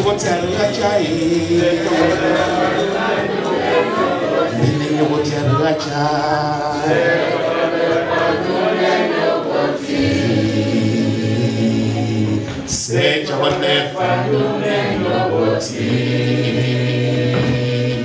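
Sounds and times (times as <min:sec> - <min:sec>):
man singing into a microphone: 0:00.0 - 0:02.7, 0:04.5 - 0:07.0
voices singing along: 0:00.0 - 0:18.0.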